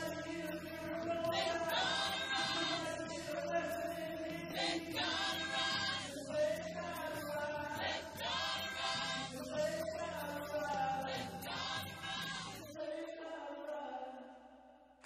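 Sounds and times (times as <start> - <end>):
gospel choir singing: 0.0 - 14.3
man singing lead vocal: 0.0 - 14.6.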